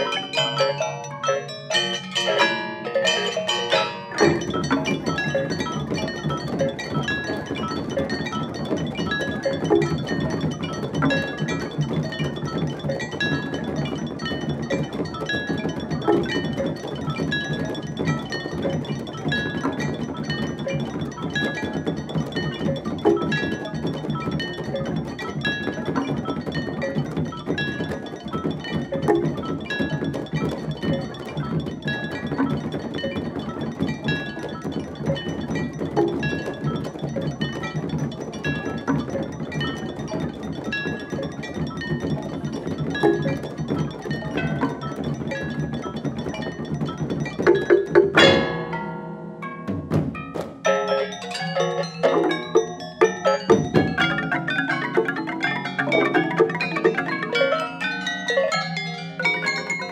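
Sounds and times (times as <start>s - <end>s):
gamelan ensemble playing: 0.0s - 59.9s.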